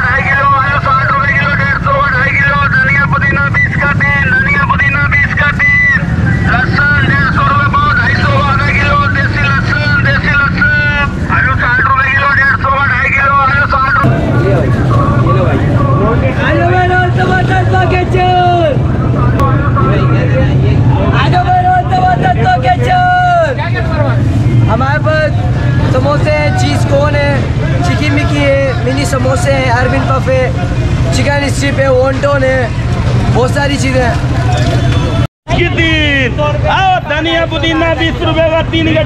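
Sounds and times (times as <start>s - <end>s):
motorcycle and car traffic rumble: 0.0s - 39.0s
voices talking and calling: 0.0s - 39.0s.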